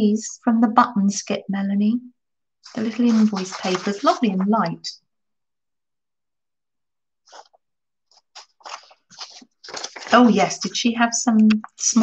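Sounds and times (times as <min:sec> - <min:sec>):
paper sheets rustling: 0:02.6 - 0:04.8, 0:07.2 - 0:12.0.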